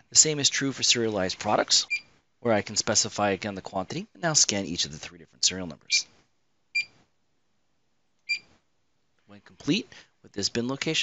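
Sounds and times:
barcode scanner beeps: 6.8s - 7.0s, 8.3s - 8.5s.

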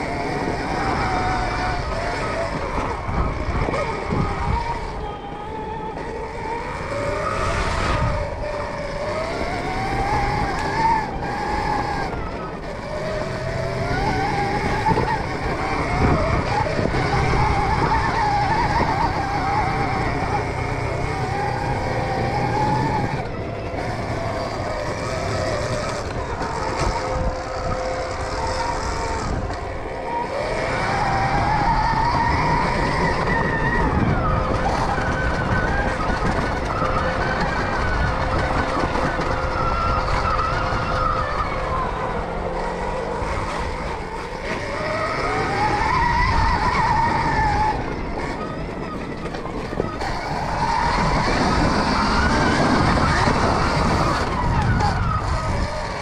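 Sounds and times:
bike rumble and rattle on dirt: 0.0s - 56.0s
electric motor whining: 0.0s - 56.0s.

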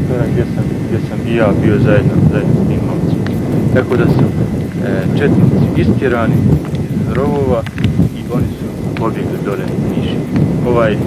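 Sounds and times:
man's voice: 0.0s - 11.0s
wind buffeting microphone: 0.0s - 11.0s.

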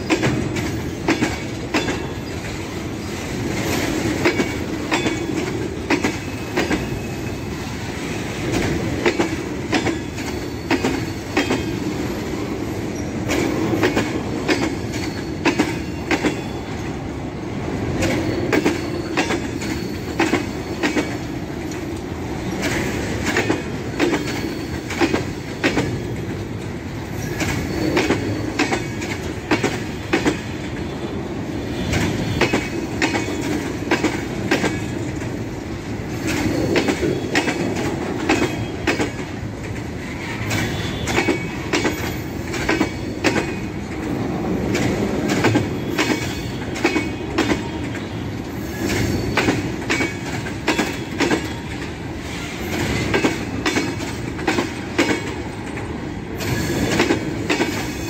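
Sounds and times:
freight wagon wheels rumbling on rail: 0.0s - 58.0s
wheels clicking over rail joints: 36.1s - 58.0s.

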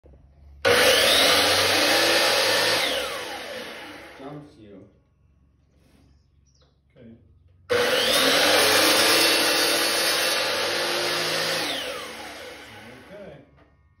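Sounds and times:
miter saw motor whining: 0.7s - 4.2s, 7.7s - 13.2s
saw cutting through stick: 0.7s - 4.3s, 7.7s - 13.2s.

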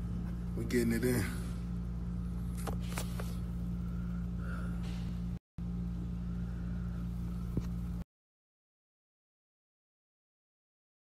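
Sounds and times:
low mechanical hum: 0.0s - 8.1s.

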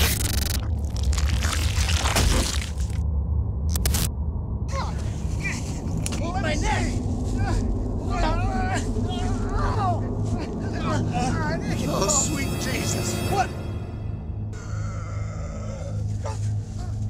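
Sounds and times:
low rumble: 0.0s - 17.0s
men shouting: 6.2s - 13.8s.

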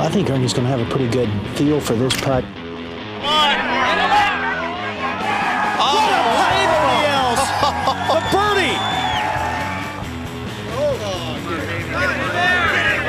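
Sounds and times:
background music: 0.0s - 13.0s
crowd cheering and shouting: 3.2s - 13.0s.

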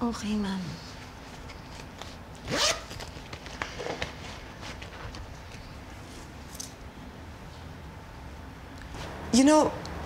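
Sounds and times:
zipper pulled open: 2.4s - 3.1s.

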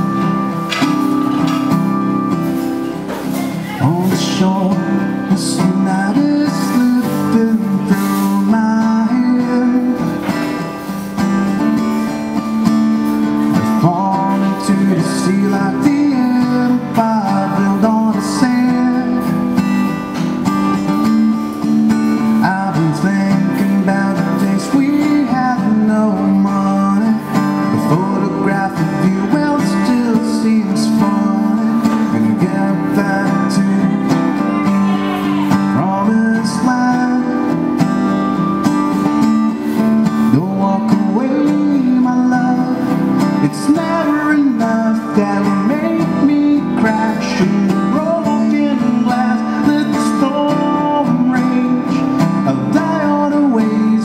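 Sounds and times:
strummed acoustic guitar: 0.0s - 54.0s
man singing into a microphone: 1.6s - 11.1s, 11.7s - 54.0s.

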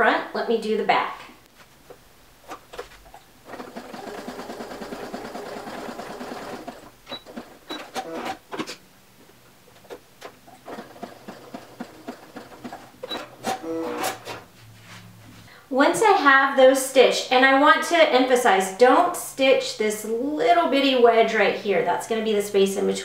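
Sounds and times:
sewing machine stitching: 3.4s - 8.7s, 10.6s - 14.4s.

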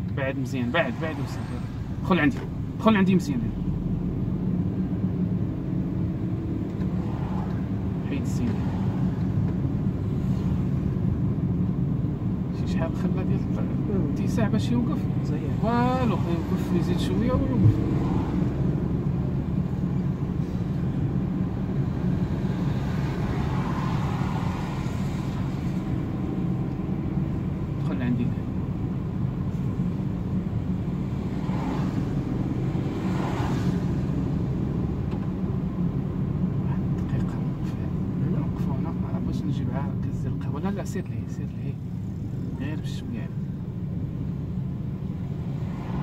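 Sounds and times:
tyres on wet road: 0.0s - 39.8s, 40.4s - 46.0s
car engine droning: 0.0s - 46.0s.

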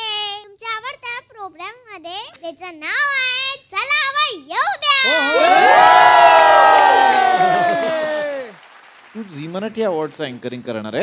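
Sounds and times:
studio audience cheering: 5.0s - 10.6s.

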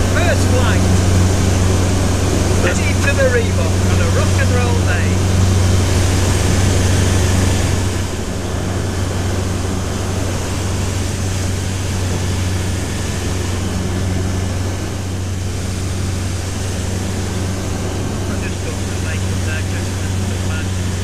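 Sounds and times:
airflow rushing: 0.0s - 21.0s
light aircraft engine droning: 0.0s - 21.0s.

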